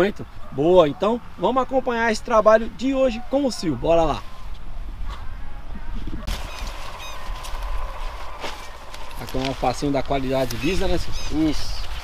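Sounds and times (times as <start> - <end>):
wind rumble on microphone: 3.7 - 12.0.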